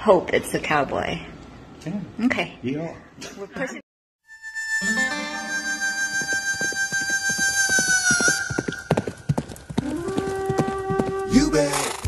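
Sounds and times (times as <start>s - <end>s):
high held tone dropping in pitch: 4.2s - 10.6s
horse hooves on hard street: 6.5s - 12.0s.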